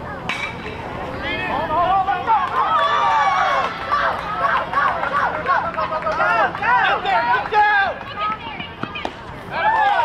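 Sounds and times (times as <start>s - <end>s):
spectators shouting and cheering: 1.2s - 10.0s.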